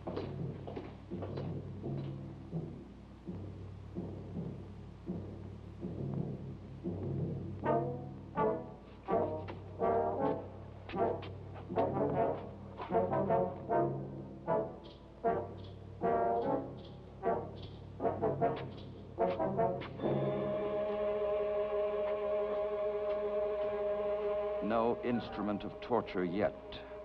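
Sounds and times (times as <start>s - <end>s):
low steady drone: 1.2s - 27.0s
short brass chords: 20.0s - 27.0s.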